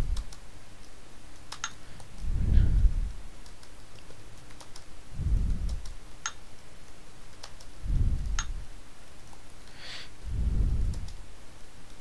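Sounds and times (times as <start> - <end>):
keyboard keystrokes: 3.4 - 6.4.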